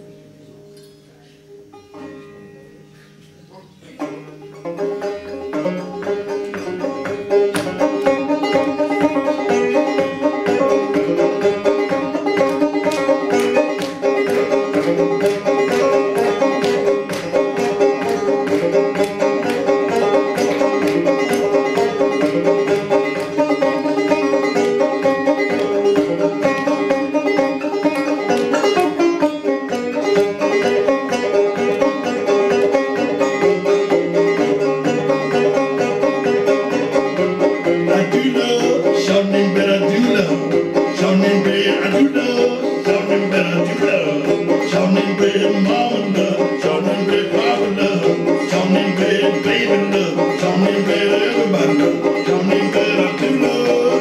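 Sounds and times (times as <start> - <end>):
banjo plucking: 0.0 - 54.0.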